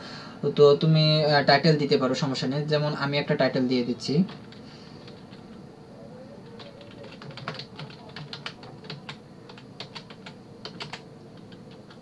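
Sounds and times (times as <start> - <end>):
faint steady hum: 0.0 - 12.0
typing on computer keyboard: 6.4 - 12.0.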